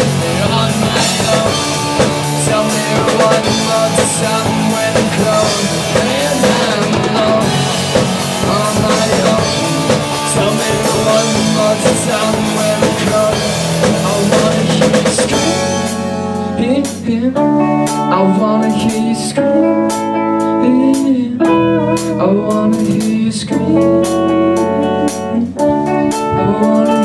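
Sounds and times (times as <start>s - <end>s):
electric guitar notes: 0.0s - 27.0s
live rock band playing: 0.0s - 27.0s.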